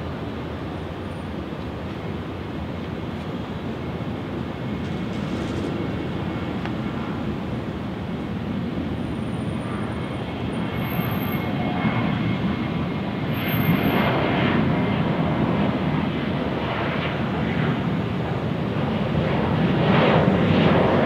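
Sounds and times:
jet engines rumbling: 0.0 - 21.0.

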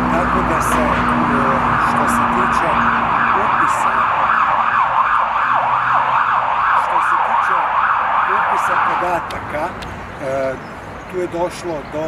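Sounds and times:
emergency siren yelping: 0.0 - 9.4.

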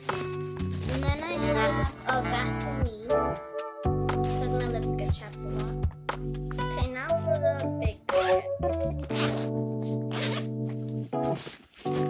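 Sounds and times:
background music: 0.0 - 12.0
backpack zipper unzipping: 8.1 - 12.0.

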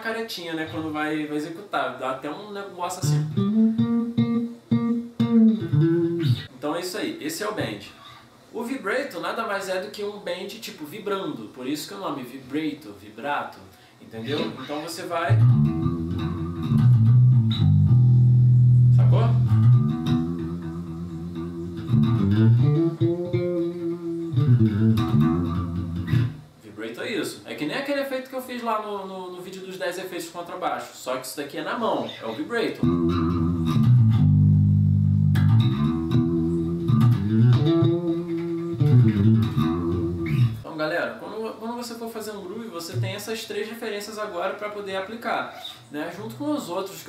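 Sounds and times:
electric bass guitar notes: 3.0 - 6.5, 15.3 - 26.5, 32.8 - 40.6.

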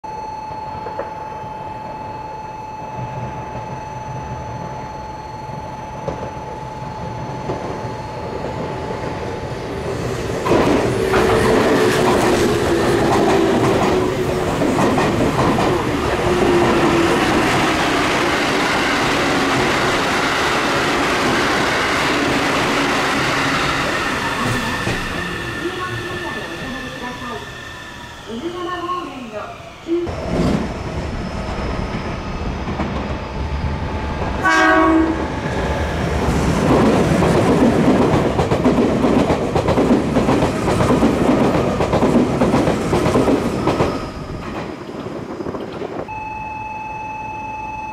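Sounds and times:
steady high tone: 0.0 - 10.1, 12.0 - 36.0, 46.1 - 47.9
train wheels clattering: 10.4 - 26.8.

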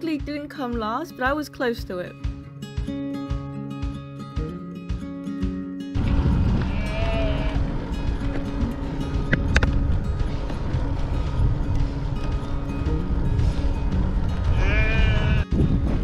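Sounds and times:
background music: 0.0 - 16.0
wind rushing on camera: 6.0 - 16.0
sheep bleating: 6.4 - 7.9, 14.5 - 15.5.

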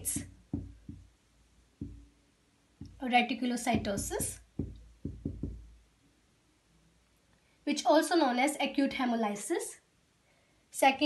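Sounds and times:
marker knocking on whiteboard: 0.0 - 1.1, 1.8 - 2.1, 2.8 - 3.1, 3.7 - 5.8.

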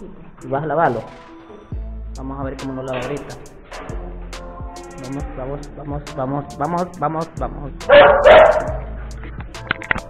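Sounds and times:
background music: 0.0 - 10.0
dog barking: 7.9 - 8.9.

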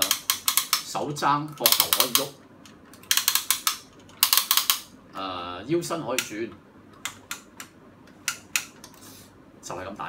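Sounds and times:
toy robot joints clicking: 0.0 - 1.0, 1.6 - 2.3, 3.0 - 4.9.

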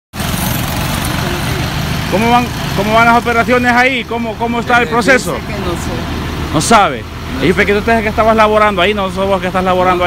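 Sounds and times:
bus engine rumble: 0.1 - 10.0
cars passing: 0.2 - 10.0.

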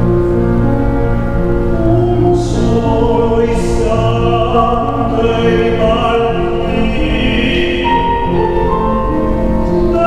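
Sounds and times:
grand piano: 0.0 - 10.0
man singing opera: 1.8 - 10.0.

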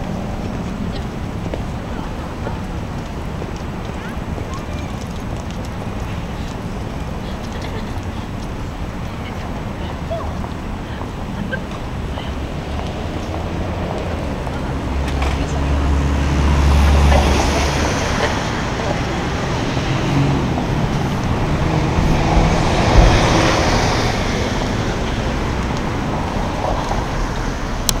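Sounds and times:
road traffic: 0.0 - 28.0
vehicle passing with low rumble: 0.0 - 28.0.

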